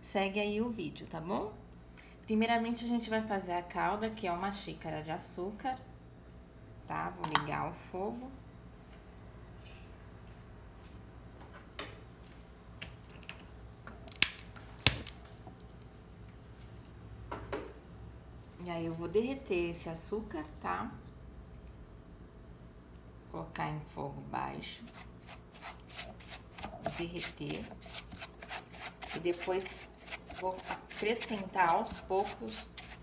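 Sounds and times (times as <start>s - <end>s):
spatula scraping sugar in saucepan: 24.8s - 33.0s.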